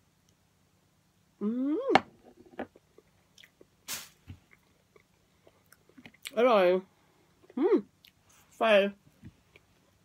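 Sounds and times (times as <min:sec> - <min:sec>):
person chewing: 0:02.7 - 0:03.7
short hiss: 0:03.8 - 0:04.3.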